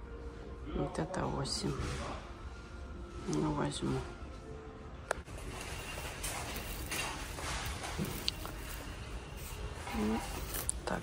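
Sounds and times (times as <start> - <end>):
soft rustling: 5.3 - 11.0.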